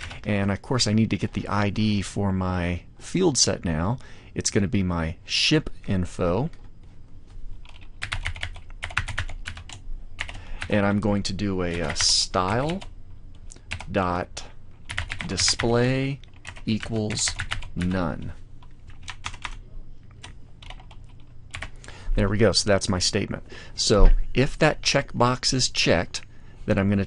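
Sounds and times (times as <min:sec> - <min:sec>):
computer keyboard typing: 0:00.0 - 0:00.2, 0:07.6 - 0:10.8, 0:11.7 - 0:12.9, 0:13.6 - 0:13.9, 0:14.8 - 0:19.6, 0:20.2 - 0:21.7.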